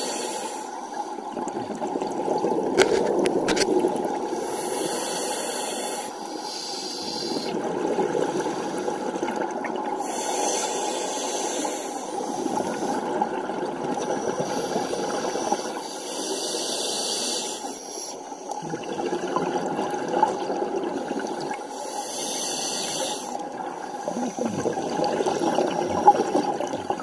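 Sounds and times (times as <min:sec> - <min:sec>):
rush of water and bubbles: 0:01.0 - 0:05.0, 0:07.2 - 0:10.4, 0:11.8 - 0:15.8, 0:18.5 - 0:21.8, 0:23.2 - 0:27.0
diver breathing through regulator: 0:04.4 - 0:07.6.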